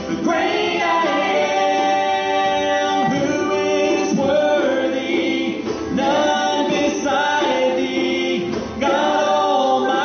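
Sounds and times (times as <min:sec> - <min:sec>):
djembe: 0:00.0 - 0:10.0
other voices singing: 0:00.0 - 0:10.0
strummed acoustic guitars: 0:00.0 - 0:10.0.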